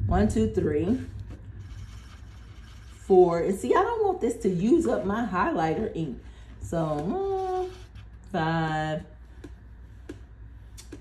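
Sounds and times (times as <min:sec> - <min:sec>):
steady low hum: 0:00.0 - 0:11.0
highlighter rubbing over paper: 0:01.6 - 0:03.3, 0:07.0 - 0:08.1.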